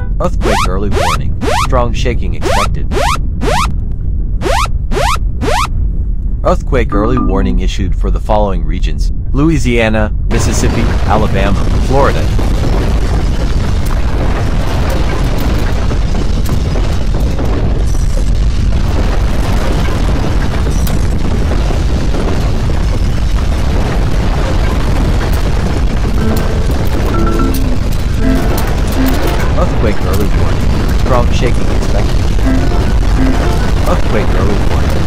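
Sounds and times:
deep earthquake rumble: 0.0s - 35.0s
short steady tones: 26.2s - 29.7s
background music: 26.2s - 30.2s, 32.3s - 34.2s.

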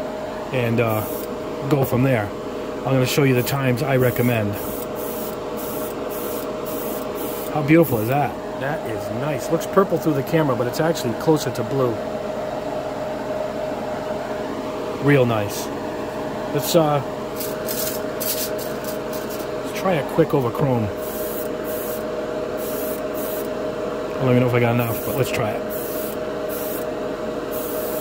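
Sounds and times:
background hum: 0.0s - 28.0s
airbrush spraying paint: 0.9s - 1.3s, 3.4s - 8.2s, 17.4s - 19.5s, 21.0s - 22.0s, 22.6s - 23.5s, 24.8s - 26.9s, 27.5s - 28.0s
hissing air bursts: 4.1s - 8.1s, 21.0s - 22.0s, 22.6s - 23.5s, 24.8s - 26.9s, 27.5s - 28.0s.

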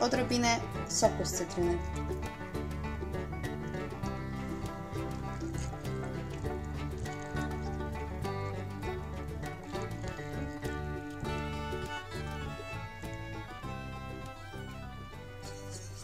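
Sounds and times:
light tune with steady beat: 0.0s - 16.0s.

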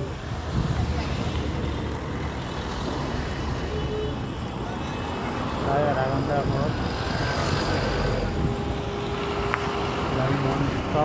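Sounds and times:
car engine and road noise: 0.0s - 11.0s
vehicles passing: 0.0s - 11.0s.

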